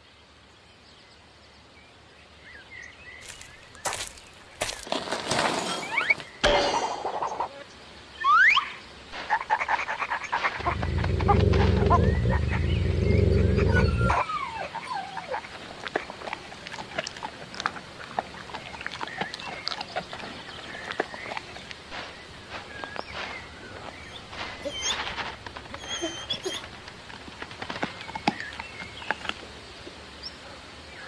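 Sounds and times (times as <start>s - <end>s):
kibble crunching: 3.2s - 5.5s, 14.7s - 29.5s
cartoon dog growl: 10.6s - 15.4s
cartoon dog whine: 13.1s - 15.4s, 25.8s - 26.6s
dog whimpering: 13.4s - 15.5s, 24.6s - 26.8s.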